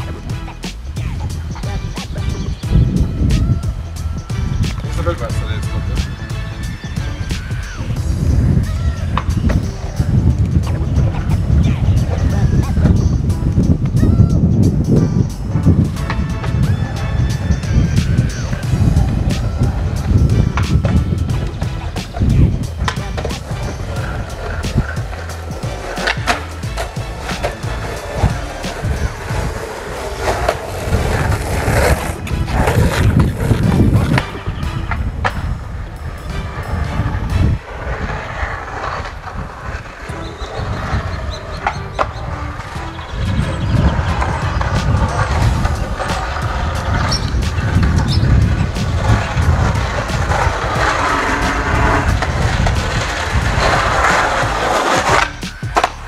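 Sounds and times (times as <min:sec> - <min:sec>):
skateboard clacking on road: 0:00.0 - 0:56.0
skateboard wheels rolling on asphalt: 0:00.0 - 0:56.0.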